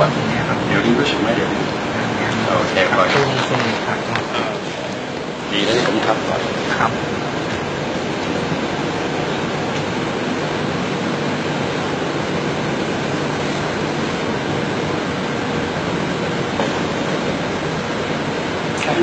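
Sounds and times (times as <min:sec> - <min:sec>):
steady rushing noise: 0:00.0 - 0:19.0.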